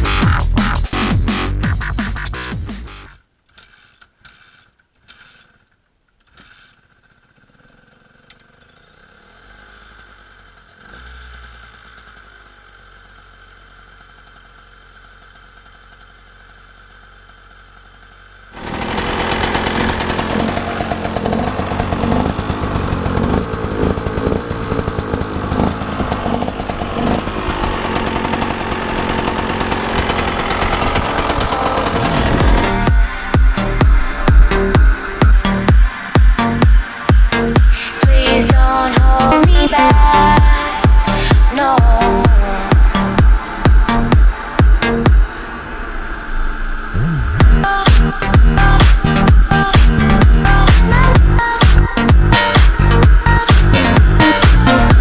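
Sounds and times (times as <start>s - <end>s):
two-stroke engine running: 0.0s - 55.0s
kick-start knocks: 18.6s - 45.5s.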